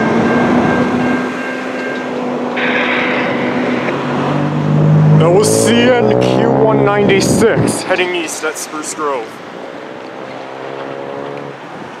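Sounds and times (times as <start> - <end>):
freight cars rumbling: 0.0 - 12.0
locomotive engine drone: 0.0 - 12.0.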